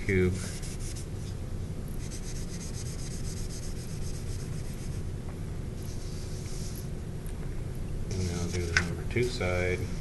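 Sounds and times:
low background hum: 0:00.0 - 0:10.0
cotton pad rubbing chalk on paper: 0:00.4 - 0:01.1, 0:02.0 - 0:05.0, 0:05.9 - 0:06.9, 0:08.1 - 0:08.8.

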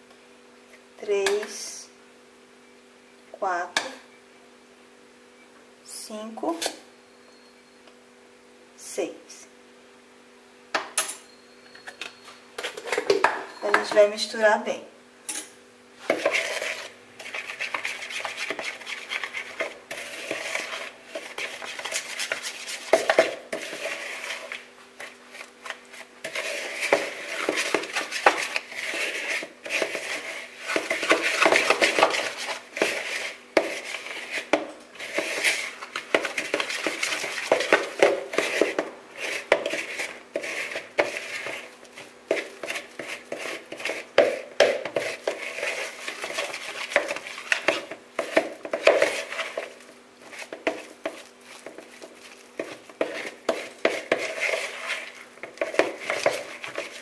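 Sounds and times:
fork beating dough in bowl: 0:16.0 - 0:57.0.

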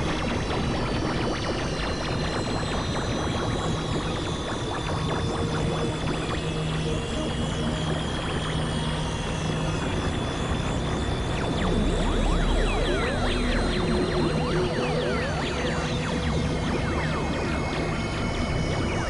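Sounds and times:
high tone sinking in pitch: 0:06.0 - 0:19.0
low hum: 0:09.2 - 0:19.0.

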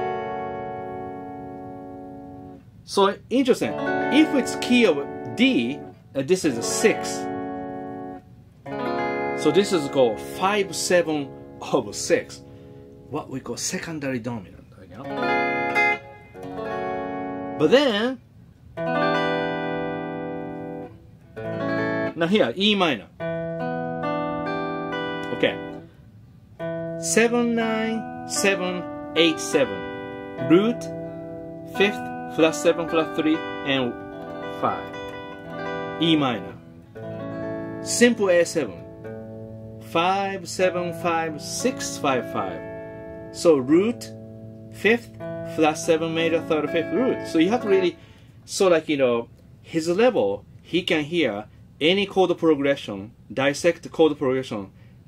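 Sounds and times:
electric guitar chord ringing: 0:00.0 - 0:02.8, 0:03.6 - 0:13.4, 0:15.0 - 0:17.9, 0:18.7 - 0:48.8.

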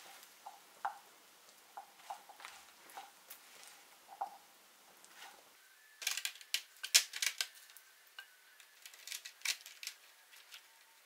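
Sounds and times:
walnuts clicking onto a sheet: 0:06.0 - 0:07.8, 0:08.6 - 0:10.6.

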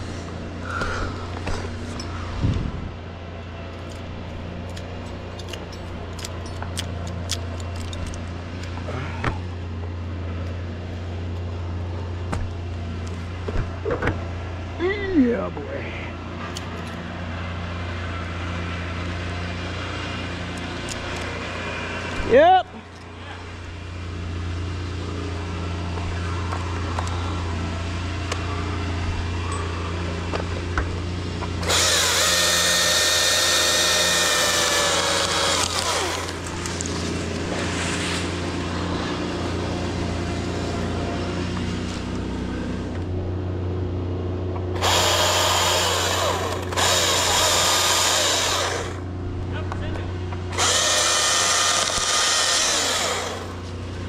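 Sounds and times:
steady low hum: 0:00.0 - 0:54.0
electric chainsaw cutting: 0:24.2 - 0:43.1, 0:44.6 - 0:49.1, 0:50.4 - 0:54.0.

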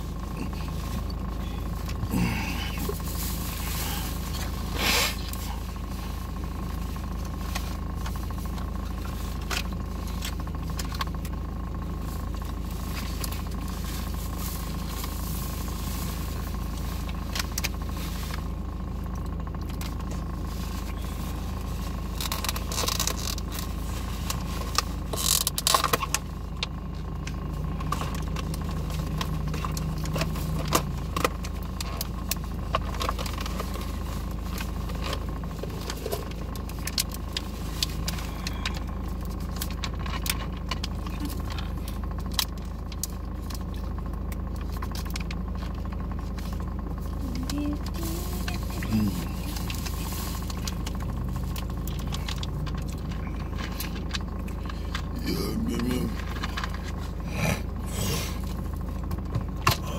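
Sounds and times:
car engine idling: 0:00.0 - 0:59.9.

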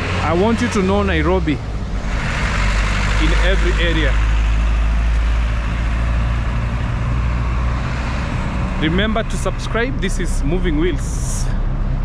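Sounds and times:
road noise: 0:00.0 - 0:12.0
traffic engine rumble: 0:00.0 - 0:12.0.

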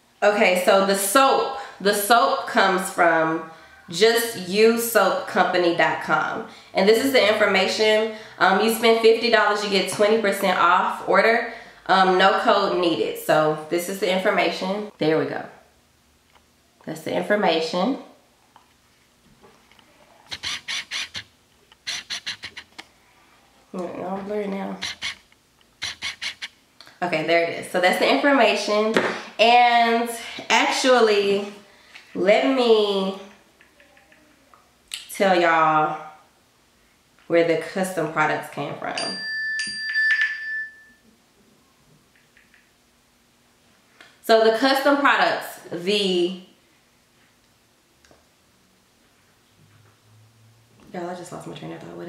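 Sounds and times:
scratchy rustles of paper card: 0:20.3 - 0:22.8.

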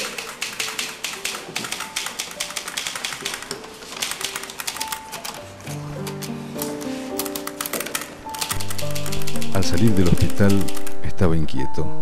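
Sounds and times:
typewriter typing quickly: 0:00.0 - 0:05.4, 0:07.2 - 0:11.0.

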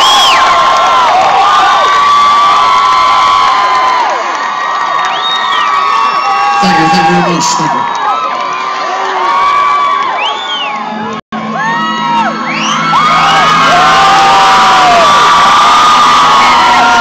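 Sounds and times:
crowd cheering and whistling: 0:00.0 - 0:17.0.

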